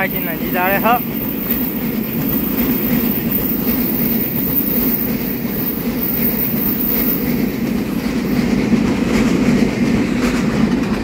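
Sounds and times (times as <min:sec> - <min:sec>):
train wheels running on track: 0:00.0 - 0:11.0.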